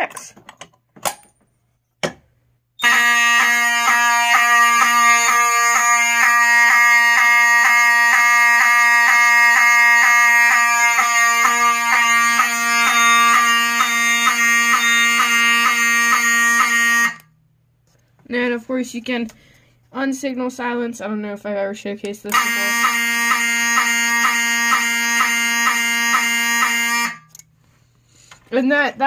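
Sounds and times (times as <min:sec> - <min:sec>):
fire alarm horn: 0:02.8 - 0:17.4, 0:22.3 - 0:27.4.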